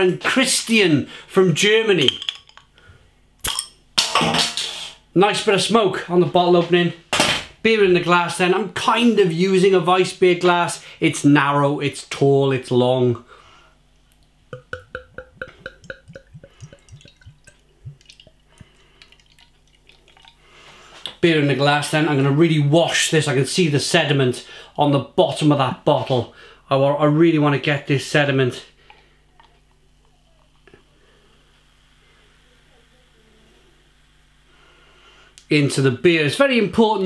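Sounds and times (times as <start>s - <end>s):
bottle opener clicking on cap: 3.4s - 3.7s
bottle cap metallic crack: 3.4s - 4.8s
beer glugging from bottle: 14.6s - 20.4s.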